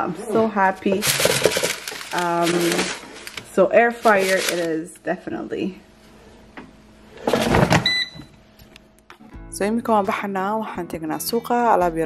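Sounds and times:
air fryer basket scraping: 0.0s - 5.0s.

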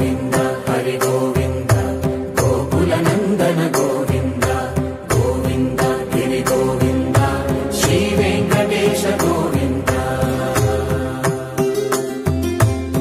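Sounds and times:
chanted devotional melody: 0.0s - 13.0s.

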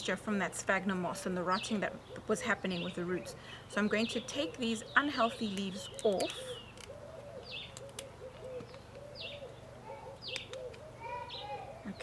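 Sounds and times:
birds calling low arching notes: 0.7s - 12.0s.

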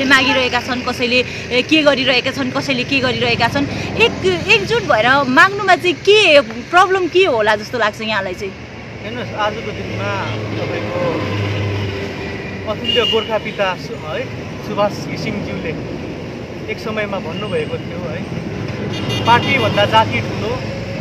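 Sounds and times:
vehicle engine running: 0.0s - 10.8s
voices: 0.0s - 11.4s.

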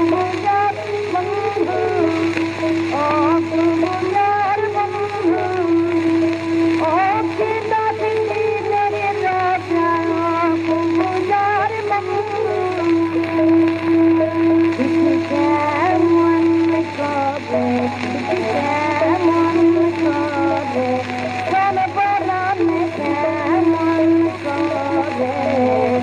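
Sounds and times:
record hiss: 0.0s - 26.0s
woman singing: 0.0s - 26.0s.

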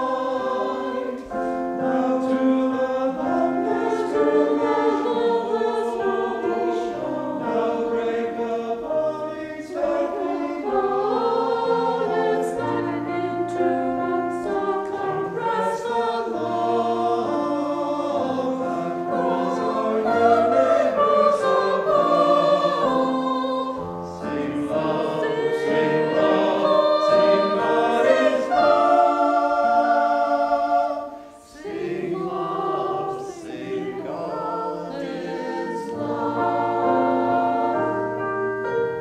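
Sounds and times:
church choir singing in parts: 0.0s - 39.0s.

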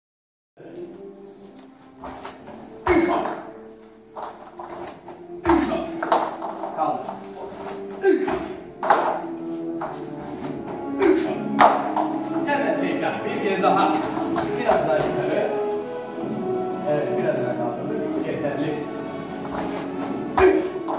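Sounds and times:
background music with held notes: 0.6s - 20.9s
feet thudding on foam mat: 2.0s - 3.5s, 4.1s - 12.4s, 14.0s - 15.4s.

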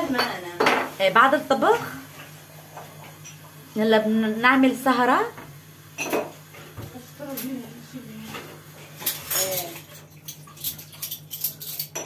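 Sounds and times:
cutlery and dishes clinking: 6.0s - 6.8s, 8.3s - 12.0s.

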